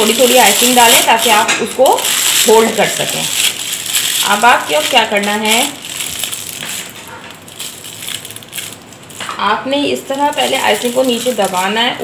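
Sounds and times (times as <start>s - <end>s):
plastic piping bag crinkling: 0.0s - 12.0s.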